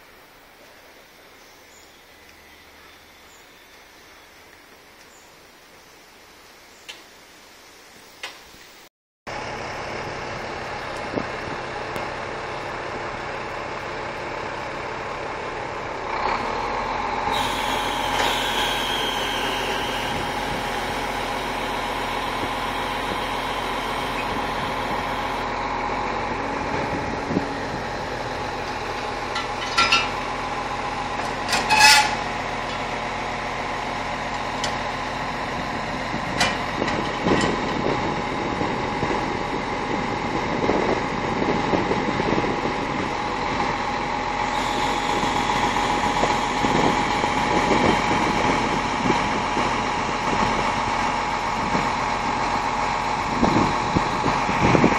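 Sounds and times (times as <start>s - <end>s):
diesel engine running: 9.3s - 54.9s.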